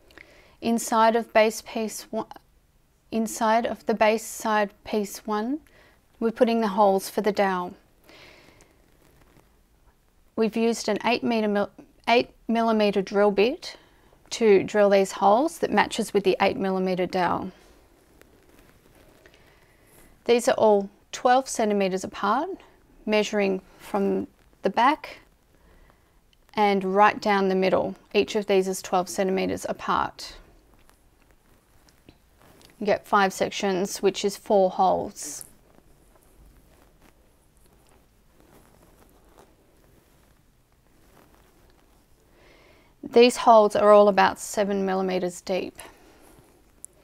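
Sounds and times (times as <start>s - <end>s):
soft handling noises: 5.6s - 10.4s, 13.4s - 43.0s, 45.2s - 47.0s.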